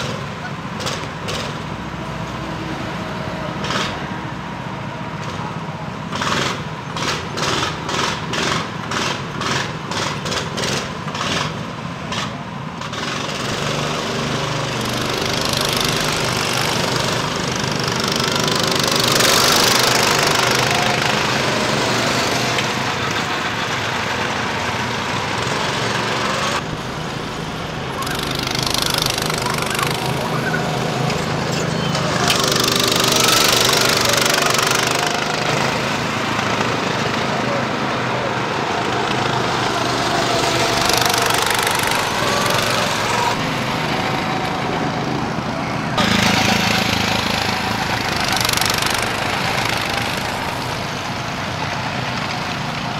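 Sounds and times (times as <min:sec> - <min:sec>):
go-kart engines running: 0:00.0 - 0:52.9.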